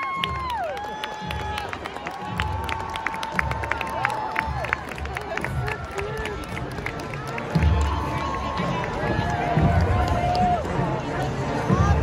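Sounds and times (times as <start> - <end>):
crowd voices and cheering: 0.0 - 12.0.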